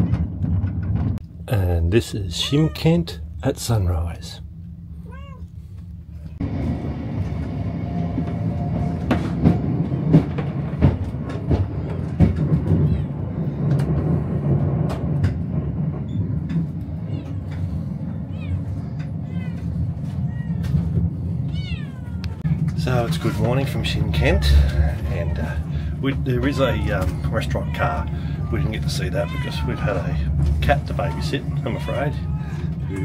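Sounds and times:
train rumbling: 0:00.0 - 0:33.0
cat meowing: 0:02.2 - 0:03.2, 0:05.0 - 0:05.6, 0:12.7 - 0:13.5, 0:17.0 - 0:22.6, 0:26.4 - 0:33.0
train wheels knocking: 0:06.6 - 0:21.3, 0:22.5 - 0:33.0.

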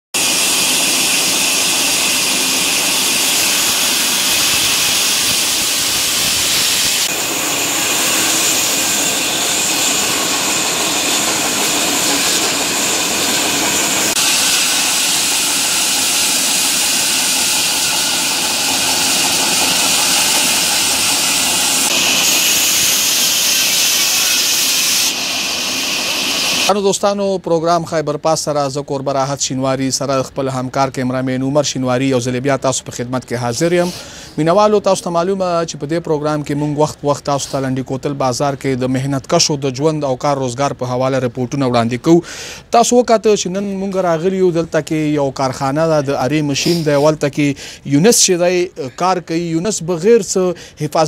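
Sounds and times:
band saw cutting through log: 0:00.2 - 0:26.7, 0:46.5 - 0:47.2.

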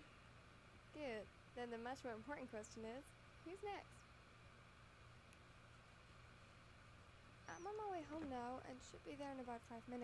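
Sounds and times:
faint low hum: 0:00.0 - 0:10.0
person speaking: 0:07.5 - 0:10.0.

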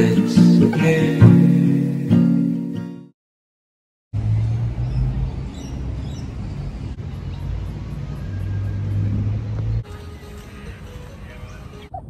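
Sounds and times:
car rumbling inside cabin: 0:04.2 - 0:09.9.

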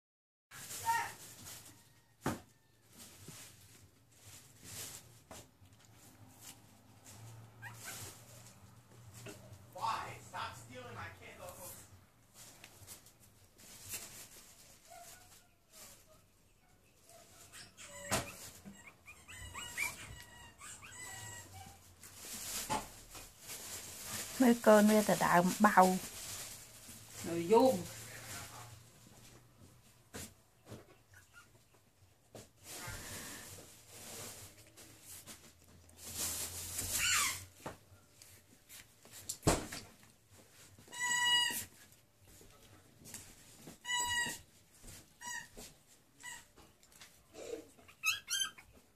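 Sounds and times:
puppies squeaking and whimpering: 0:07.6 - 0:08.3, 0:17.0 - 0:21.9, 0:31.0 - 0:31.7, 0:36.7 - 0:37.6, 0:40.9 - 0:41.8, 0:43.8 - 0:44.5, 0:45.1 - 0:45.6, 0:47.4 - 0:48.9.

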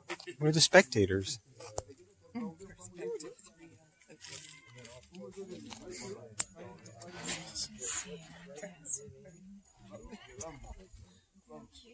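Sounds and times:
quiet voices talking: 0:00.0 - 0:11.9.

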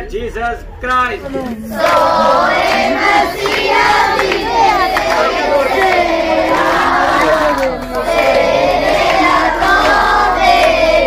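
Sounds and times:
children and adults singing: 0:01.6 - 0:11.0.

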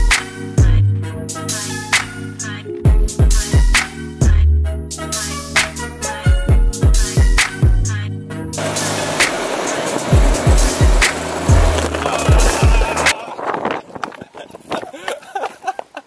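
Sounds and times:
hip-hop music with bass kicks: 0:00.0 - 0:08.0, 0:10.1 - 0:13.1
plastic wheels rolling on asphalt: 0:08.6 - 0:15.0.

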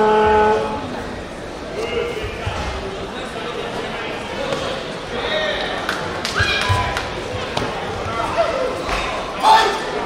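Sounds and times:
voices calling out in a hall: 0:00.0 - 0:10.0.

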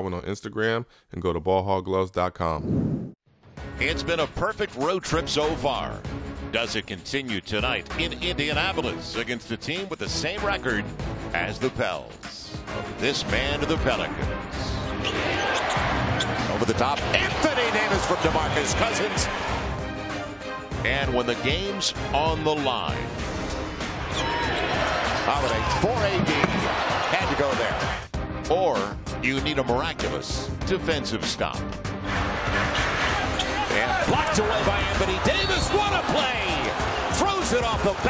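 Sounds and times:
music: 0:03.3 - 0:38.0
arena crowd noise: 0:15.0 - 0:19.7, 0:24.0 - 0:28.1, 0:32.1 - 0:38.0.

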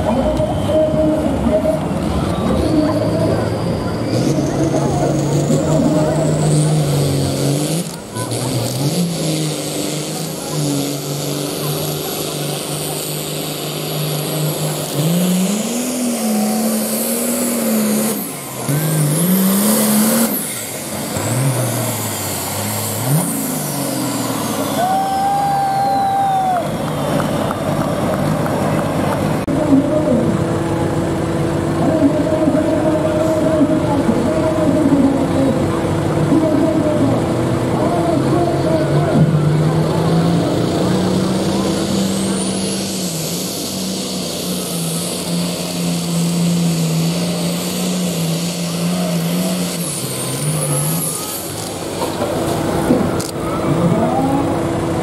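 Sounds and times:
diesel tractor engine under load: 0:00.0 - 0:55.0.

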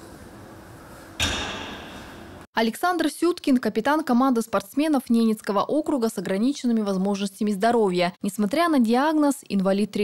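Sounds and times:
room noise: 0:00.0 - 0:02.5.

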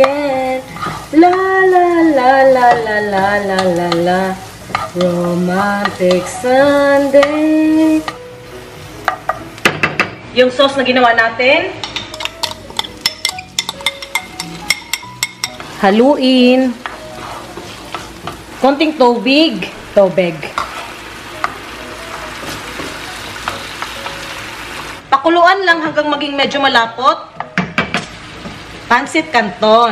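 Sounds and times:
wooden spoon stirring in frying pan: 0:00.0 - 0:08.1, 0:12.4 - 0:19.5, 0:20.2 - 0:25.0.

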